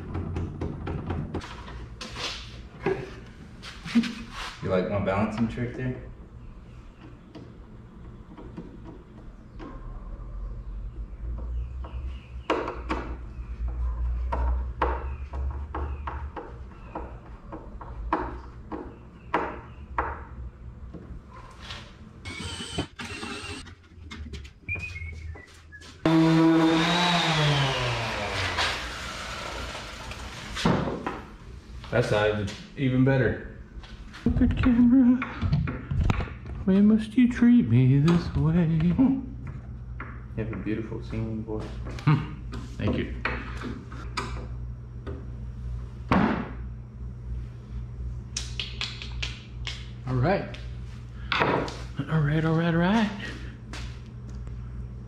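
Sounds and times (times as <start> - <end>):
low steady hum: 31.0 - 55.0.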